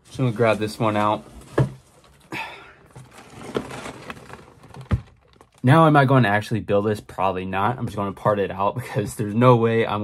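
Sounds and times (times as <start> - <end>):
cardboard rustling and scraping: 0.0 - 5.8.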